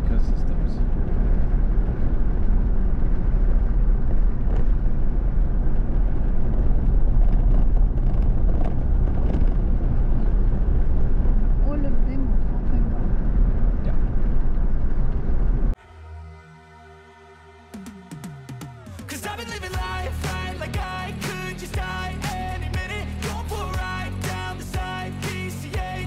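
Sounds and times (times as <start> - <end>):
road and engine noise in car: 0.0 - 15.8.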